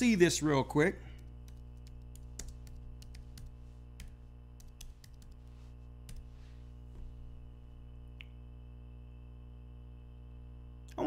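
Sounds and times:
low electrical hum: 0.0s - 11.0s
computer keyboard tapping: 1.2s - 6.4s.

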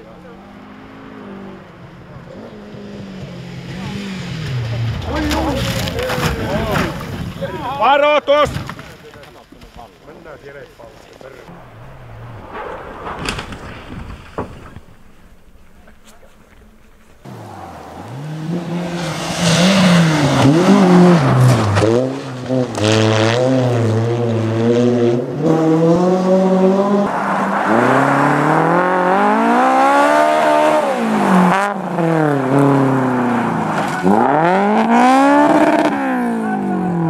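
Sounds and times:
rally car engines revving: 0.0s - 8.0s, 10.9s - 37.0s.

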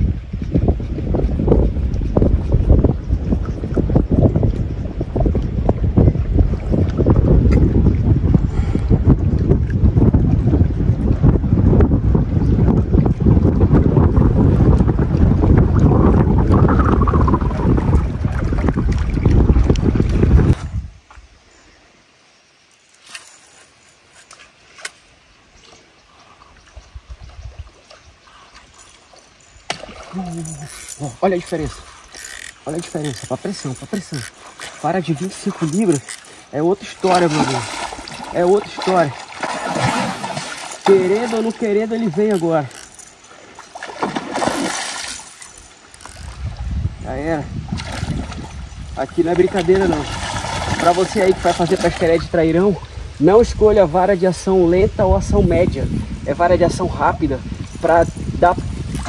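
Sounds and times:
wind buffeting microphone: 0.0s - 21.3s, 26.4s - 28.7s, 46.0s - 59.0s
person speaking: 30.1s - 37.7s, 40.8s - 42.8s.

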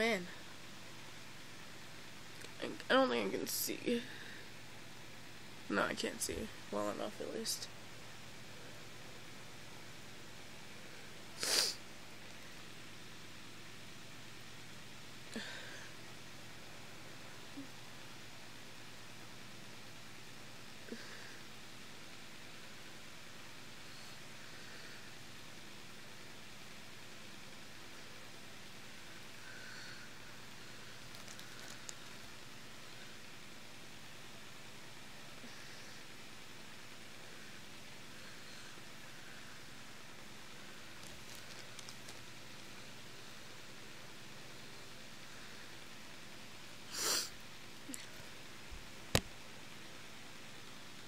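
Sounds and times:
faint hiss: 10.7s - 16.0s, 20.0s - 51.0s
small clicks: 31.1s - 32.2s, 41.0s - 42.7s.

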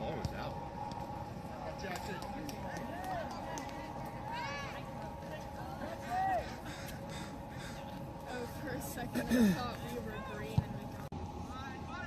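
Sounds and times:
crow cawing: 5.9s - 8.4s.

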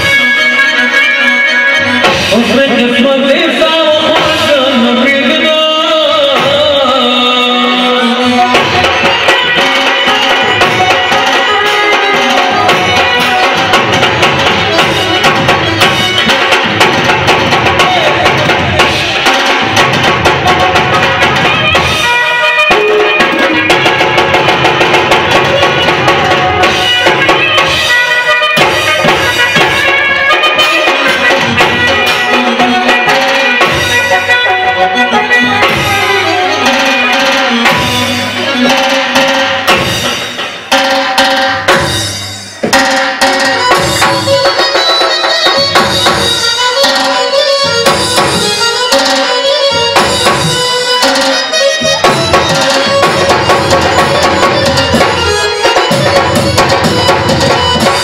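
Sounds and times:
fast hand drum rhythm: 2.0s - 58.0s.

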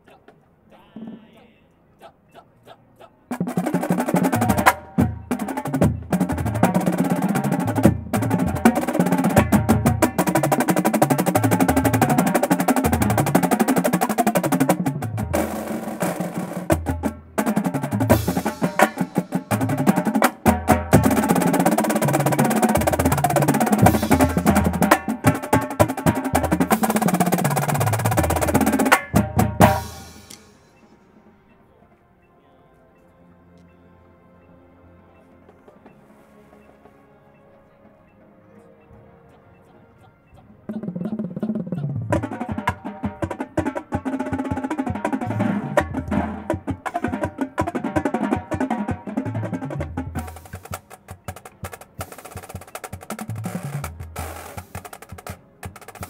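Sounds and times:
marching drumline playing: 3.3s - 30.8s, 39.6s - 56.0s.

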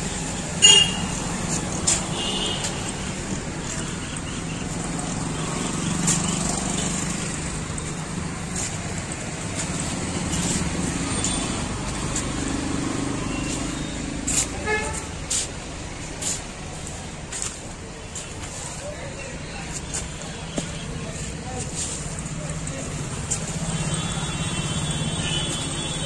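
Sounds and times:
road traffic rumble: 0.0s - 26.0s.

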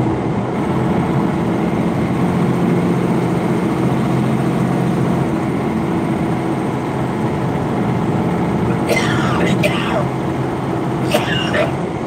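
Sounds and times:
truck diesel engine drone: 0.0s - 12.0s
tyre and road noise: 0.0s - 12.0s.

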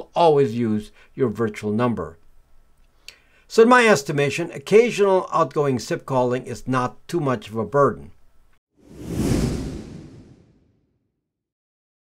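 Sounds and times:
whoosh: 8.8s - 11.0s.

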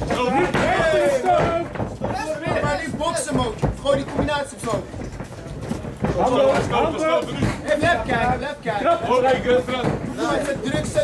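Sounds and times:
men shouting: 0.0s - 2.9s.

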